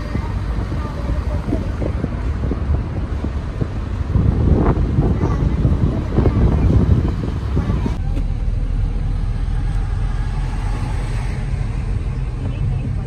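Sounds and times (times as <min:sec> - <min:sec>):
car engine and tyres rumbling: 0:00.0 - 0:13.0.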